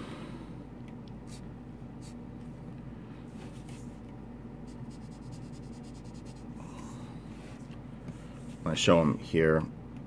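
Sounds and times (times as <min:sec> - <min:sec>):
pen scratching on paper: 0:04.7 - 0:06.4.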